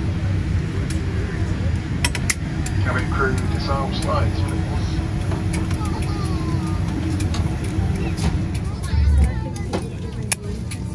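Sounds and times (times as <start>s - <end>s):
aircraft cabin rumble: 0.0s - 10.9s
passengers talking: 0.0s - 10.9s.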